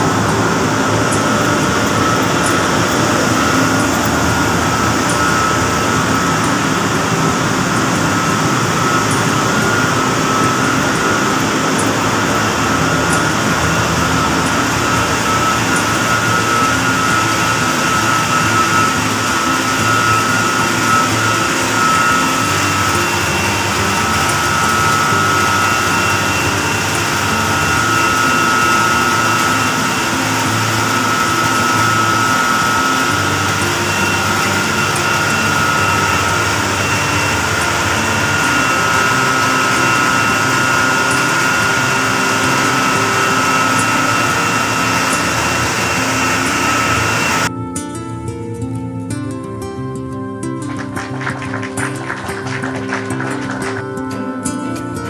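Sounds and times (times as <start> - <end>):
water pumps humming with whine: 0.0 - 49.7, 50.5 - 55.0.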